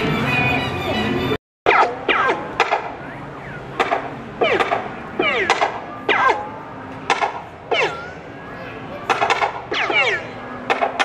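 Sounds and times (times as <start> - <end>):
electronic gun shots: 9.2 - 11.0.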